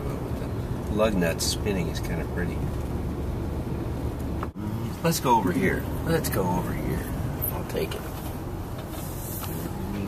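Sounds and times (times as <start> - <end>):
car engine and tyres rumbling: 0.0 - 10.0.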